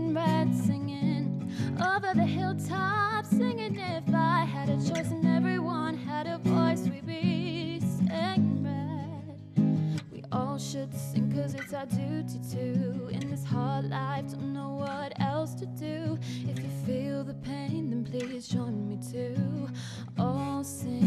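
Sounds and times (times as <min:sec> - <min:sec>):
acoustic guitar: 0:00.0 - 0:21.0
woman singing: 0:00.0 - 0:21.0.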